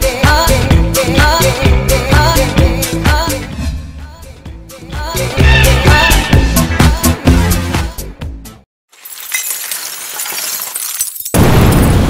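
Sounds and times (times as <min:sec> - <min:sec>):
dance trailer music: 0:01.7 - 0:08.6
glass shattering: 0:08.9 - 0:12.0.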